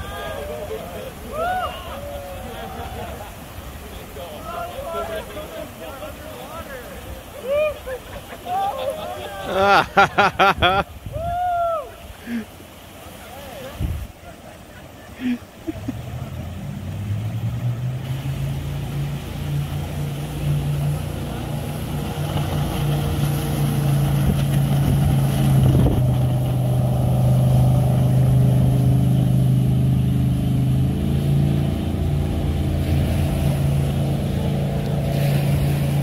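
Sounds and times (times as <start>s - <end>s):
boat engine humming: 0.0s - 11.3s, 12.0s - 36.0s
rapids rushing: 0.0s - 36.0s.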